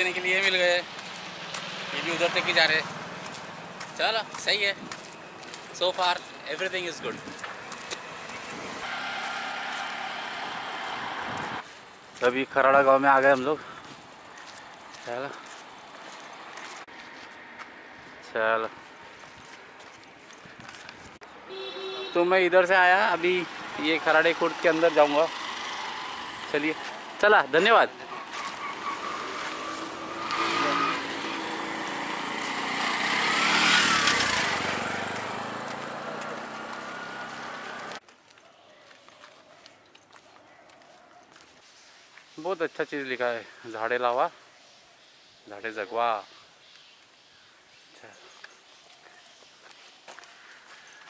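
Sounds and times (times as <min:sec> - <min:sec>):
vehicle passing close: 0:00.0 - 0:03.9, 0:07.6 - 0:11.6, 0:23.2 - 0:38.0
engine pulling away: 0:00.0 - 0:04.1, 0:08.2 - 0:11.6, 0:23.2 - 0:27.2, 0:27.8 - 0:38.0
road traffic: 0:00.0 - 0:51.0.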